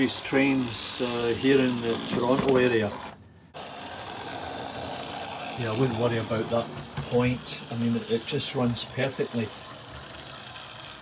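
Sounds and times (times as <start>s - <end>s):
model train motor whirring: 0.0s - 11.0s.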